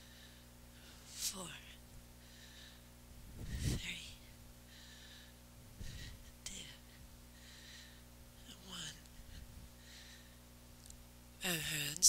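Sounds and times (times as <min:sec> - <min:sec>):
woman breathing: 0:00.0 - 0:01.3, 0:02.2 - 0:08.2, 0:09.1 - 0:10.5.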